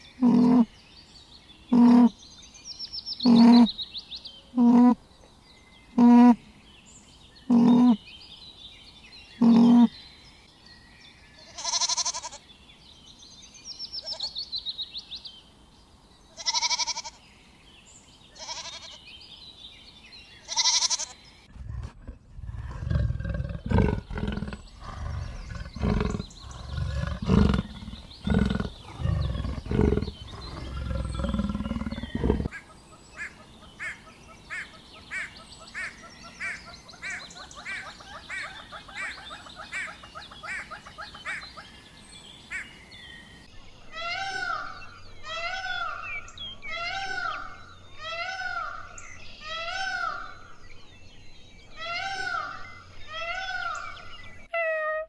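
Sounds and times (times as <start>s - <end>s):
goat bleating: 11.5s - 12.4s, 16.4s - 17.2s, 18.4s - 19.0s, 20.5s - 21.1s
leopard sawing call: 20.6s - 32.6s.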